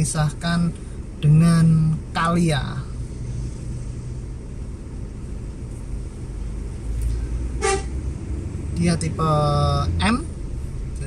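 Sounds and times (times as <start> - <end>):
idling traffic rumble: 0.0 - 11.0
vehicle horn toot: 7.6 - 8.0.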